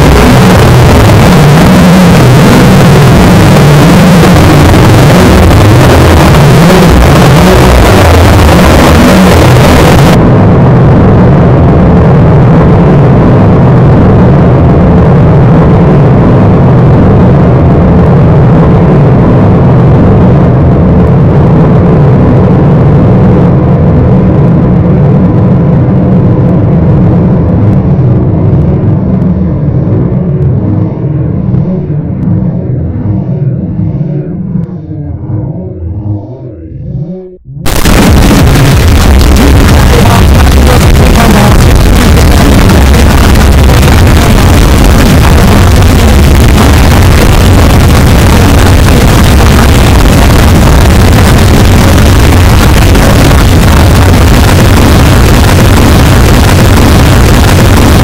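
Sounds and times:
dense distorted noise: 0.0s - 58.0s.

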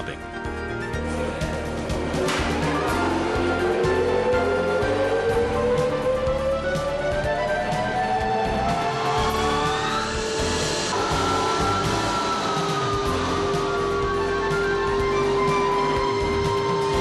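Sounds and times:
background music with held tones: 0.0s - 17.0s.

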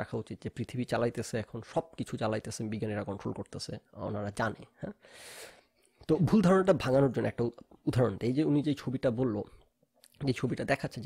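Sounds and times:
man talking: 0.0s - 5.0s, 6.0s - 11.0s.

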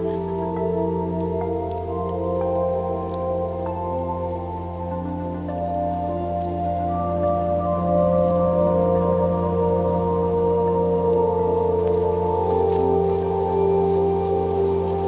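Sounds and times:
slow ambient music: 0.0s - 15.0s
twigs crackling: 0.0s - 15.0s.

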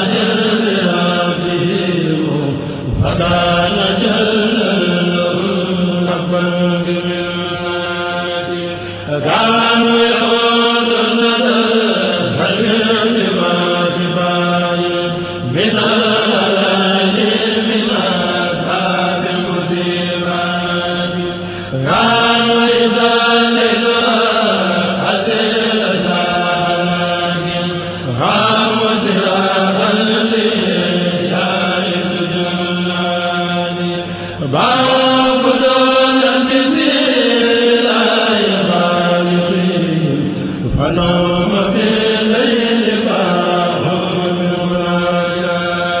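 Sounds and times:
devotional chanting: 0.0s - 46.0s
steady low hum: 0.0s - 46.0s.

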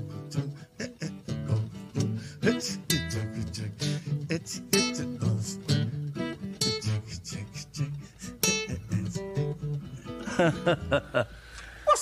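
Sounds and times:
nylon-string acoustic guitars: 0.0s - 11.8s.

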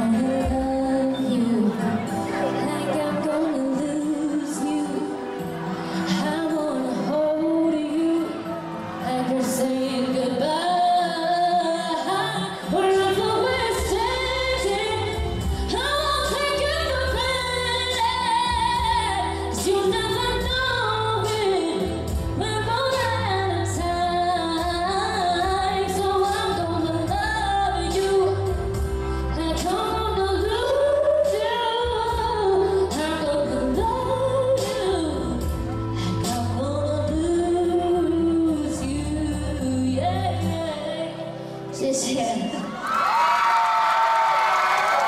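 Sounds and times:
pop backing track: 0.0s - 42.6s
woman singing into microphone: 0.0s - 42.7s.

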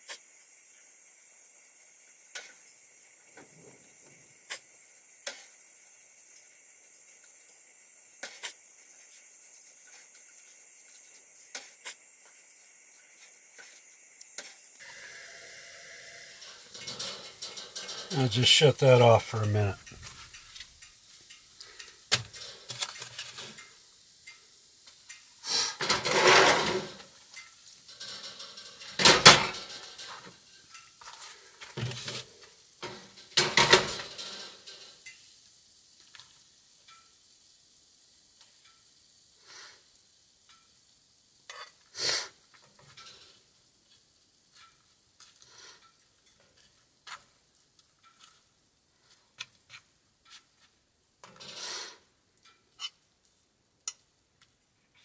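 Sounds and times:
utensil scraping a frying pan: 16.3s - 18.6s, 21.3s - 23.8s, 25.4s - 35.1s, 41.5s - 47.4s, 49.1s - 53.0s
metal cookware clattering: 16.4s - 18.6s, 21.7s - 23.7s, 25.8s - 35.0s, 51.2s - 51.9s.

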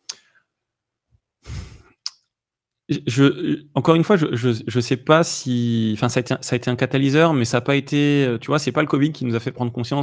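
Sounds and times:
mouth click: 0.0s - 0.3s, 2.0s - 2.3s
man sighing: 1.4s - 2.0s
man speaking: 2.9s - 10.0s.

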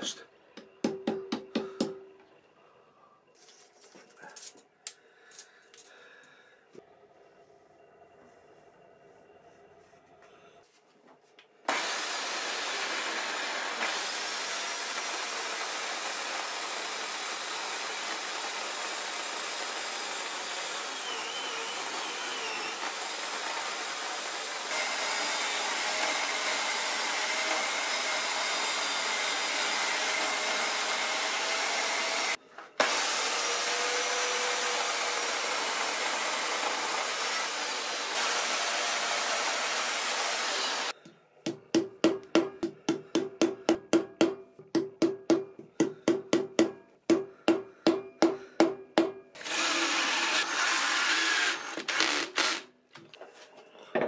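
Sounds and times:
electric chainsaw cutting log: 11.7s - 41.0s, 49.4s - 52.7s.

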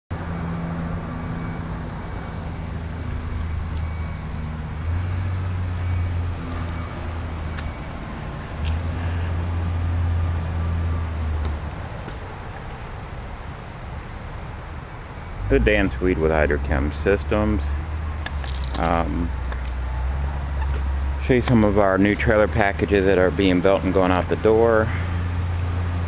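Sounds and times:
engine humming: 0.1s - 26.0s.

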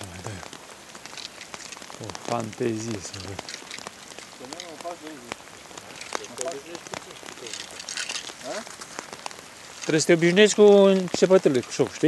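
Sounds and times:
rain falling on water: 0.0s - 12.0s.

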